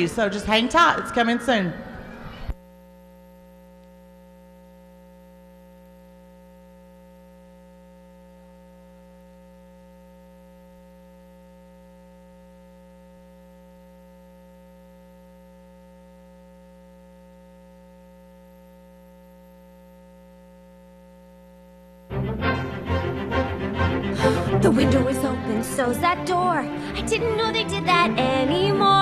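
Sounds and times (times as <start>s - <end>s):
electrical mains hum: 0.0s - 22.1s
person speaking: 24.1s - 29.0s.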